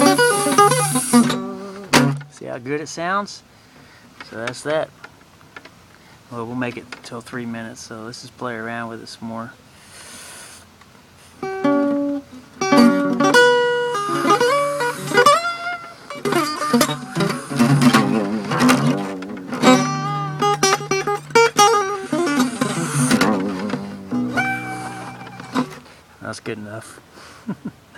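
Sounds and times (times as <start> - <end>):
solo acoustic guitar picking: 0.0 - 2.6, 11.4 - 26.0.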